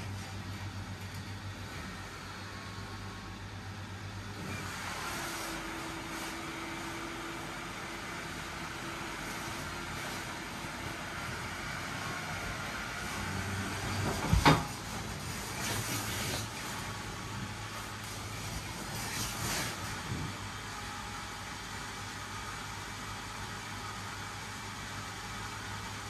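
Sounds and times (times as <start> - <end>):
blower fan whirring: 0.0 - 26.0.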